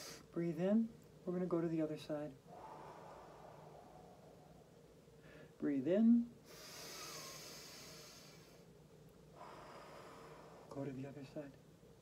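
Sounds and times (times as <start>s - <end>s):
person breathing in: 2.5s - 5.6s, 6.5s - 8.6s, 9.4s - 10.7s.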